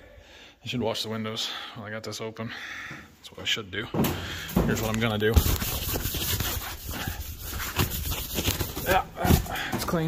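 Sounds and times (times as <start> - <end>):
hand rubbing plastic window: 4.8 - 9.5.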